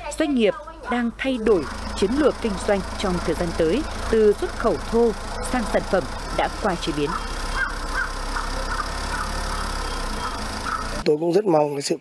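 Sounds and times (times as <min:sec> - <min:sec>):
engine idling: 0:00.0 - 0:11.1.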